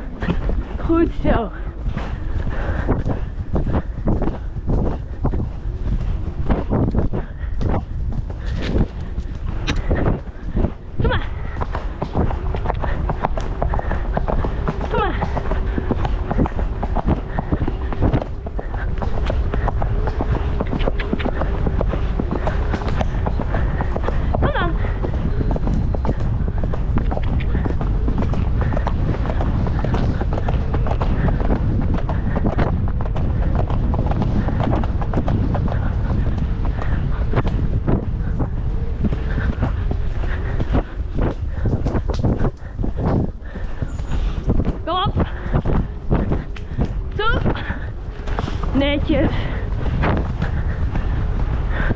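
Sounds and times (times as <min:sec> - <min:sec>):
horse hoofbeats on dirt: 0:00.0 - 0:51.9
wind rushing over microphone: 0:00.0 - 0:51.9.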